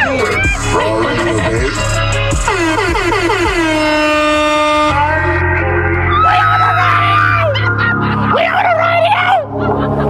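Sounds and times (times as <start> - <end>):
steady bass: 0.0 - 10.0
horn-like tone gliding down: 2.4 - 6.5.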